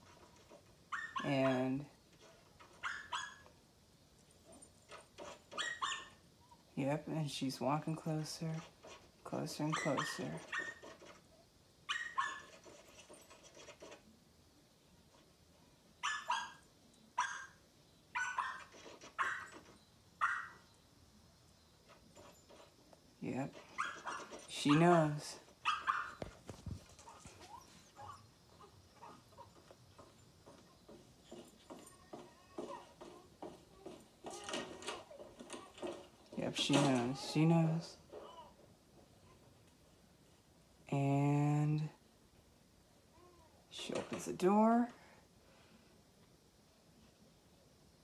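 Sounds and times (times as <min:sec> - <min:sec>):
dog barking on television: 0:00.4 - 0:03.6, 0:05.2 - 0:06.2, 0:08.9 - 0:11.2, 0:11.8 - 0:14.0, 0:16.0 - 0:20.7, 0:23.5 - 0:26.4, 0:27.0 - 0:30.1.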